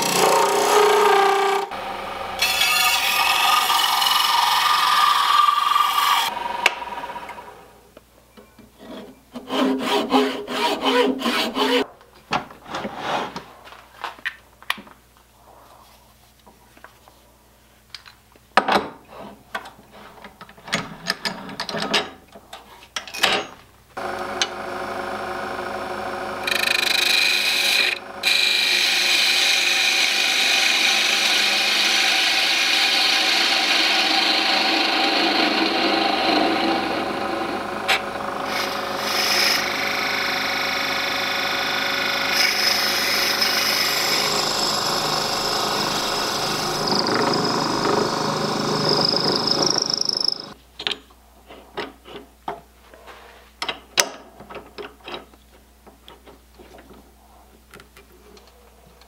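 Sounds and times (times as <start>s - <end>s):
lathe motor whine: 1.8s - 7.7s, 24.0s - 50.6s
tool scraping spinning wood: 26.4s - 50.6s.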